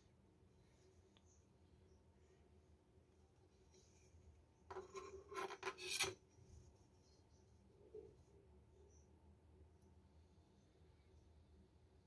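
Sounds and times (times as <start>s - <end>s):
hand rubbing wooden knife handle: 4.7s - 6.2s.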